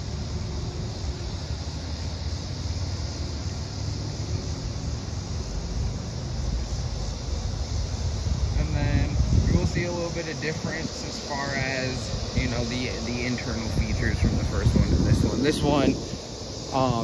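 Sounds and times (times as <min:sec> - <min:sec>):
wind buffeting microphone: 0:04.5 - 0:17.0.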